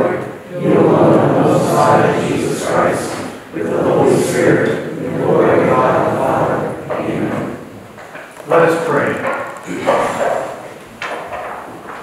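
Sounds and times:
man speaking: 0:08.4 - 0:10.7.

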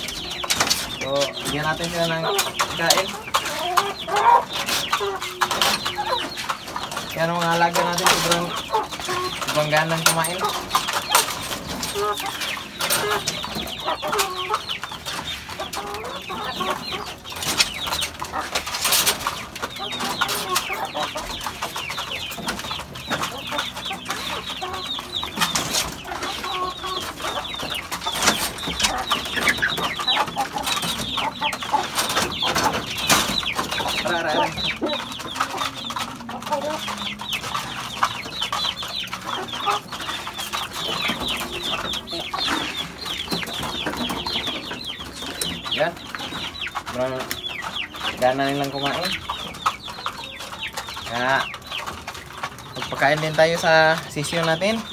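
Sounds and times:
chickens clucking: 0:00.0 - 0:54.9.

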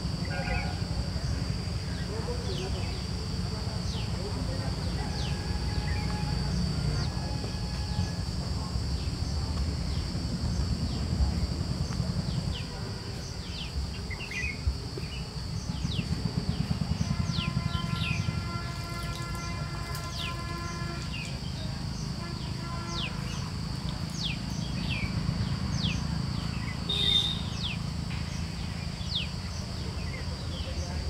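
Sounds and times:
high-pitched insect drone: 0:00.0 - 0:31.0
low steady rumble: 0:00.0 - 0:31.0
downward-sweeping bird calls: 0:25.8 - 0:28.4.

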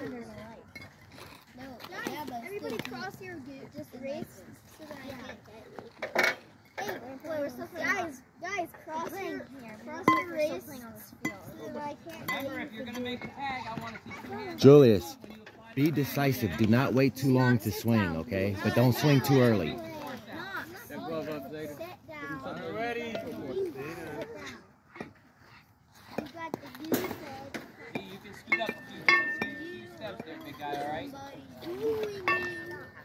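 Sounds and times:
children and spectators talking: 0:00.0 - 0:33.0.

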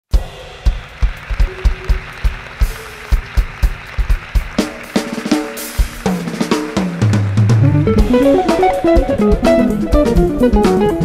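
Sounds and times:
drum kit groove: 0:00.1 - 0:11.0
pitched instrument notes: 0:05.5 - 0:11.0.

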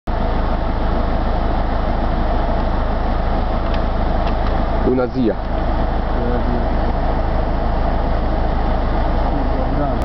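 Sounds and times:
car engine rumble inside cabin: 0:00.1 - 0:10.0.

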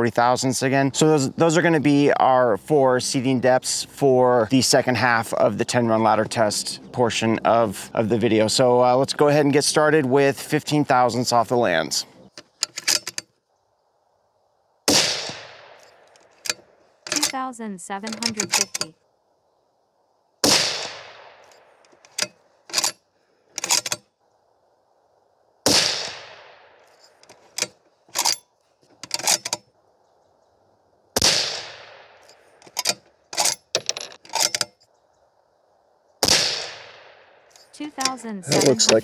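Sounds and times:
rifle shots with echo: 0:14.9 - 0:16.0, 0:20.4 - 0:21.5, 0:25.7 - 0:26.8, 0:31.2 - 0:32.3, 0:36.2 - 0:37.5.

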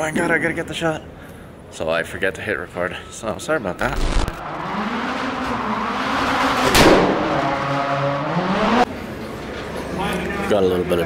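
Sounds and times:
race car engine revving: 0:03.8 - 0:08.9
loud sharp crack: 0:06.7 - 0:07.4.

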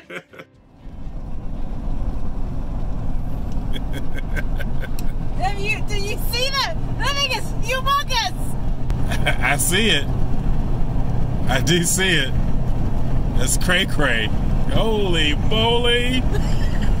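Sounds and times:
car road noise: 0:00.0 - 0:17.0
voices: 0:03.8 - 0:10.1, 0:13.4 - 0:17.0.

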